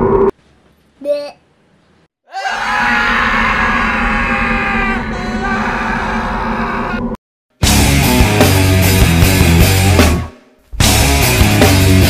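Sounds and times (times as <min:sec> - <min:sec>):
men screaming in fright: 0:02.3 - 0:07.1.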